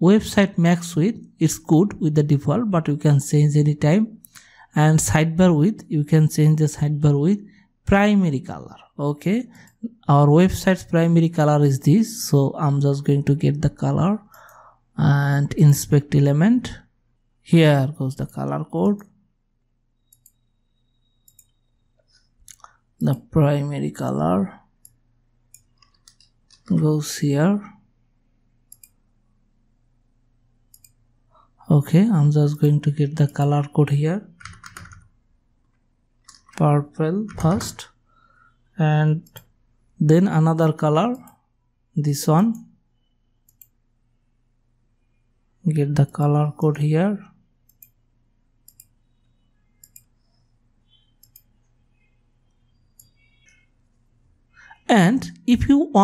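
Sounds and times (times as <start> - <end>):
person speaking: 0.0 - 19.2, 22.4 - 24.8, 25.9 - 27.9, 31.4 - 35.0, 36.3 - 38.0, 38.8 - 42.7, 45.6 - 47.4, 54.6 - 56.0
computer mouse clicks: 20.0 - 20.5, 21.2 - 22.8, 24.8 - 26.8, 28.6 - 29.1, 30.7 - 31.0, 35.7 - 36.6, 39.2 - 39.6, 43.4 - 43.8, 47.6 - 48.0, 48.6 - 54.8.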